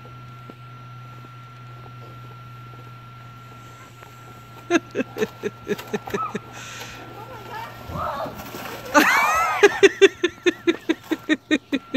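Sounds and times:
plastic sled sliding on snow: 1.7 - 11.4
person laughing: 3.7 - 7.7, 8.8 - 11.9.

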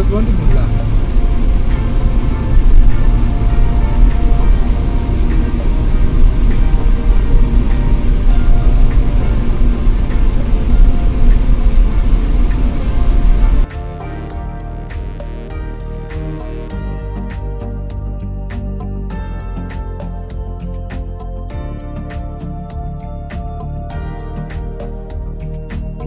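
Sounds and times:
road and wind noise from car: 0.0 - 13.7
background music: 0.0 - 26.0.

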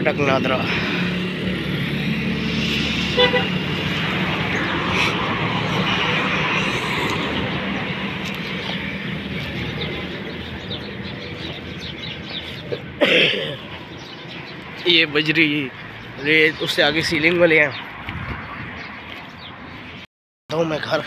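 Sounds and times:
road traffic noise: 0.0 - 21.0
vehicle horn toot: 3.1 - 3.6.

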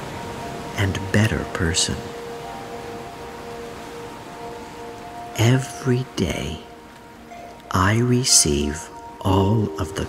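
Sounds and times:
ambient music: 0.0 - 10.0.

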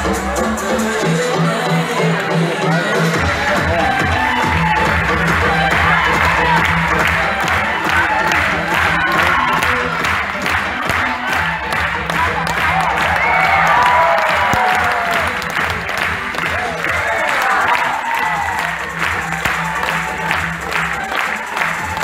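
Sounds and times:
music with steady beat: 0.0 - 22.0
audience clapping and cheering: 2.1 - 22.0.

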